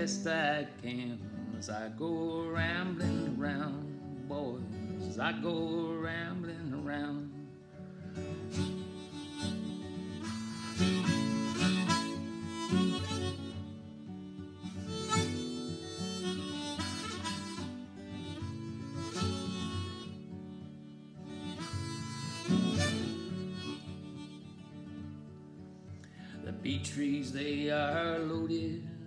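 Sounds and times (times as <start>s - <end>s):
strummed acoustic guitar: 0.0s - 29.0s
harmonica solo: 7.7s - 26.6s.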